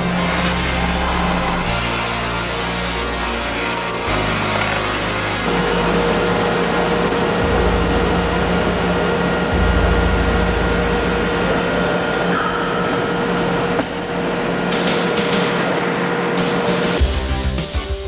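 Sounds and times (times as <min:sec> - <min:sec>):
factory machinery humming and rumbling: 0:00.0 - 0:17.1.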